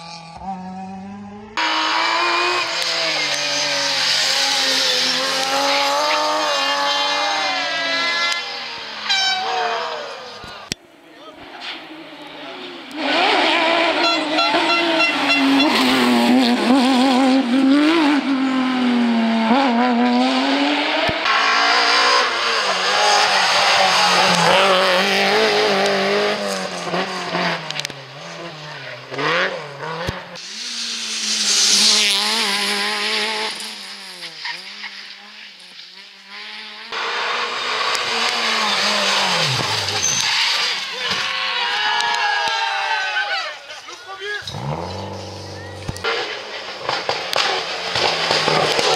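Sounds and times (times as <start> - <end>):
rally car engines revving: 0.0 - 48.9.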